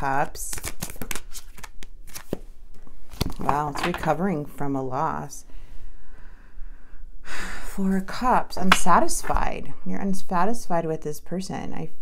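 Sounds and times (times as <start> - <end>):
cards clicking and sliding: 0.5 - 2.4.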